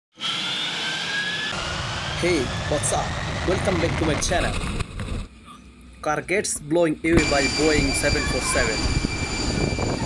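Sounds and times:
jet engine running: 0:00.2 - 0:05.4, 0:07.0 - 0:10.0.

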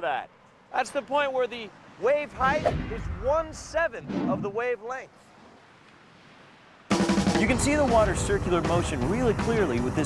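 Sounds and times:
music with drums: 0:06.9 - 0:10.0.

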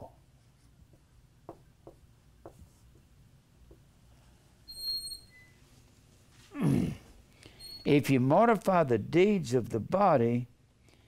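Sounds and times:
marker writing on whiteboard: 0:00.0 - 0:03.1.

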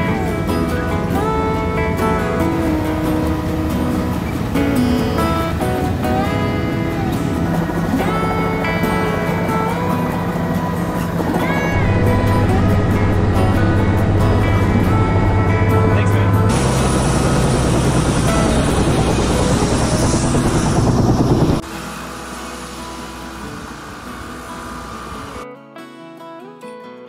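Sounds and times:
helicopter rotor and engine drone: 0:00.0 - 0:25.4
background music: 0:00.0 - 0:26.8.

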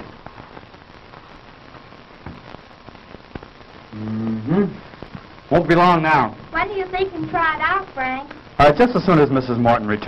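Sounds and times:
faint crackles and ticks: 0:00.0 - 0:10.0
rain-like hiss: 0:00.0 - 0:10.0.

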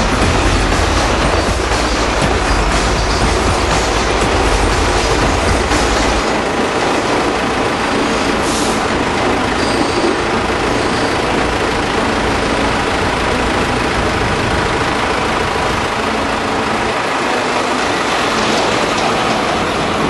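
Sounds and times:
city street noise: 0:00.0 - 0:20.0
heavy low rumble: 0:00.0 - 0:20.0.

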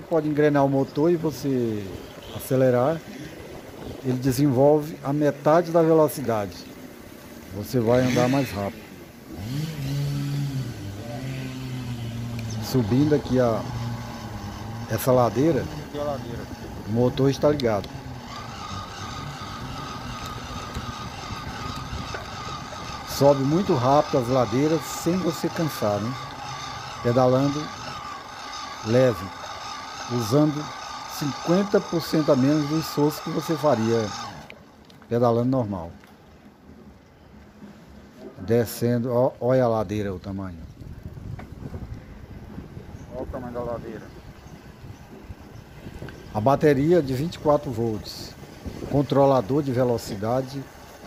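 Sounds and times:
wind buffeting microphone: 0:01.3 - 0:05.0, 0:11.6 - 0:29.4, 0:40.5 - 0:51.0
electric bicycle motor whine: 0:06.8 - 0:34.7, 0:40.7 - 0:51.0.

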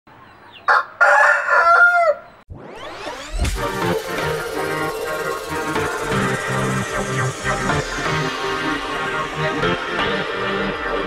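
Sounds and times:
rooster crowing: 0:00.6 - 0:02.4.

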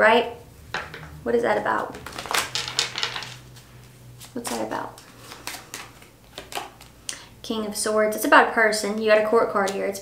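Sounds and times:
cards being shuffled: 0:01.8 - 0:07.2.

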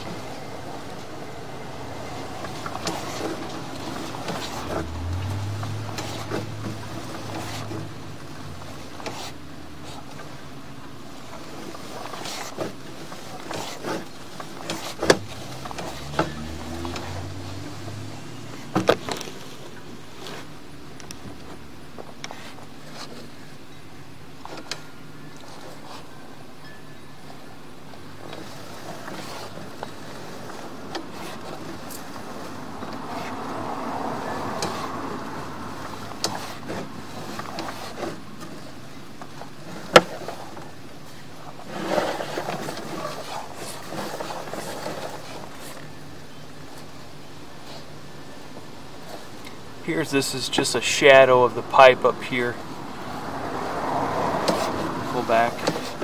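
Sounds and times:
steady background noise: 0:00.0 - 0:56.0.

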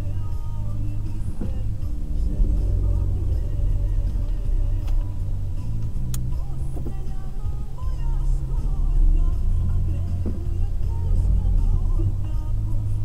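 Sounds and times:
background music: 0:00.0 - 0:13.0
car engine idling: 0:00.0 - 0:13.0
sharp click: 0:04.8 - 0:05.1, 0:06.1 - 0:07.0.

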